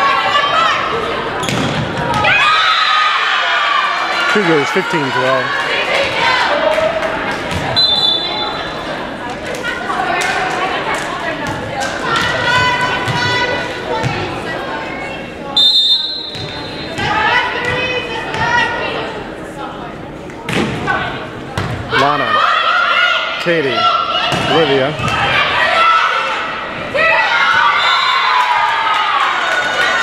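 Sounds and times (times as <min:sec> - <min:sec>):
people calling out and chattering: 0:00.0 - 0:30.0
referee's whistle: 0:07.8 - 0:08.7, 0:15.6 - 0:17.0
volleyball bouncing and struck: 0:16.2 - 0:18.4.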